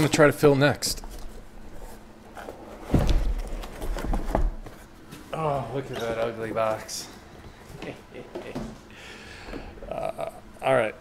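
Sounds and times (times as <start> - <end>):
cardboard boxes thumping: 2.8 - 4.8.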